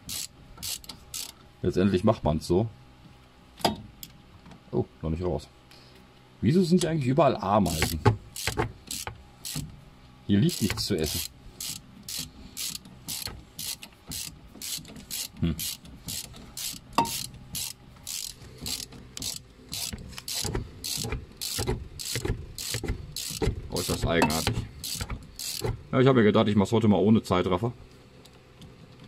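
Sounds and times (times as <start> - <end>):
ratchet wrench clicking: 0.0 - 1.4, 7.7 - 9.7, 10.5 - 25.8.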